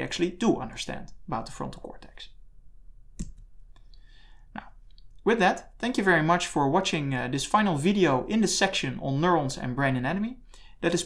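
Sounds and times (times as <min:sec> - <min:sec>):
person speaking: 0:00.0 - 0:02.4, 0:04.5 - 0:11.0
sharp click: 0:03.2 - 0:03.9.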